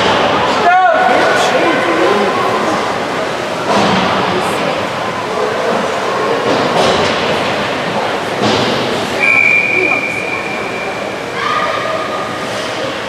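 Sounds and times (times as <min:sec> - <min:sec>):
players and spectators voices: 0:00.0 - 0:13.0
steady high whistle: 0:09.2 - 0:11.1.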